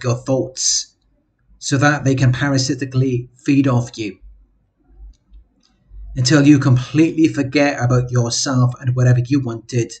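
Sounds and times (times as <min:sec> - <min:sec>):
man speaking: 0:00.0 - 0:01.0, 0:01.6 - 0:04.2, 0:06.1 - 0:10.0.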